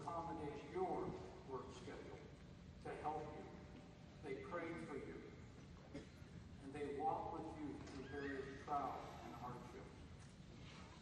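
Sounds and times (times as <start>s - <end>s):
man speaking over public address: 0.0s - 5.5s, 6.6s - 10.2s.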